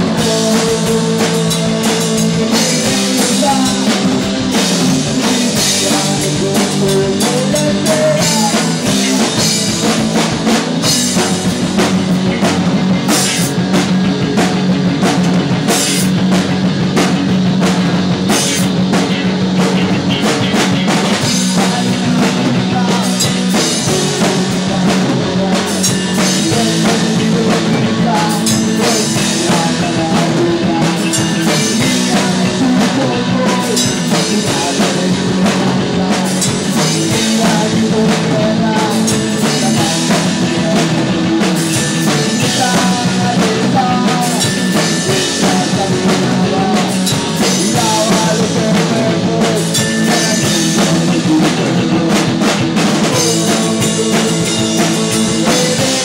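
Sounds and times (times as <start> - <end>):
rock band playing instrumental: 0.0 - 56.0.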